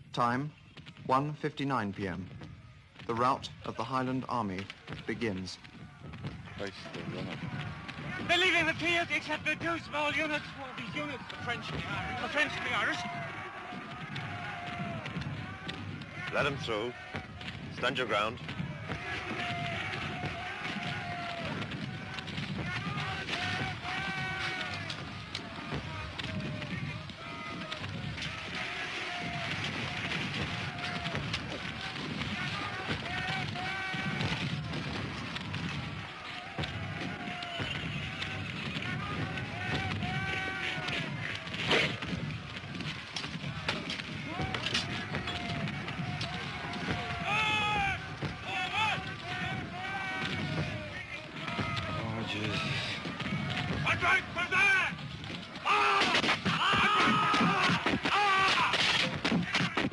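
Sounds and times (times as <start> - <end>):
men shouting and yelling: 3.0 - 59.9
sharp crack: 55.3 - 59.9.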